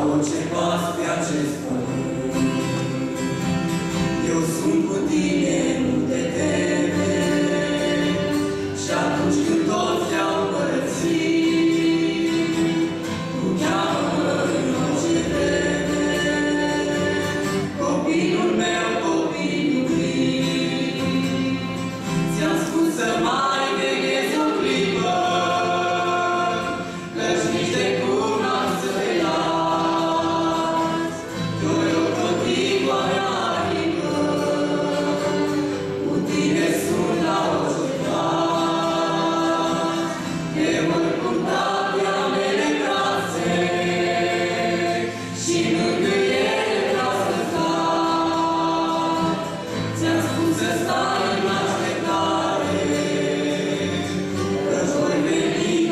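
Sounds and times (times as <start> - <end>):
acoustic guitar strumming: 0.0 - 55.9
woman and man singing duet: 0.0 - 55.9.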